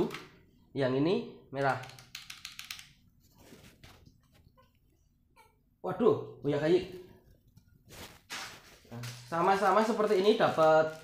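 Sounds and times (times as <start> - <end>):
mechanical keyboard key clicks: 1.8 - 2.9.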